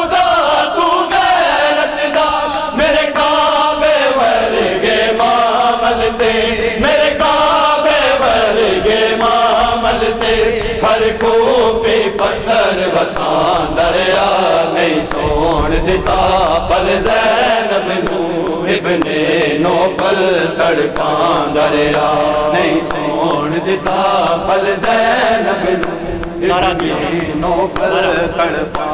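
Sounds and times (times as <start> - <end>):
men chanting a lament: 0.0 - 28.9.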